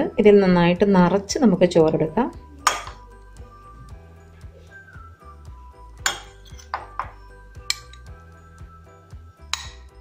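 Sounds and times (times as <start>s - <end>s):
woman talking: 0.0s - 2.4s
metal spoon clinking on glass bowl: 6.0s - 8.1s, 9.5s - 10.0s.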